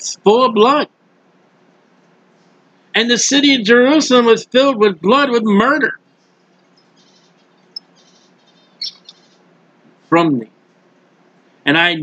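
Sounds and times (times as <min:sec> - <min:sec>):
room hiss: 0:00.0 - 0:12.0
faint high bird chirps: 0:06.2 - 0:09.5.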